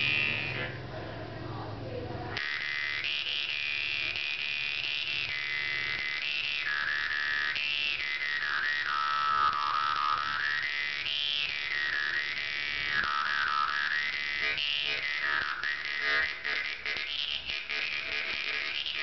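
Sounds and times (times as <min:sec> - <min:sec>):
jaw harp buzzing melody: 0:00.0 - 0:00.8, 0:02.4 - 0:19.0.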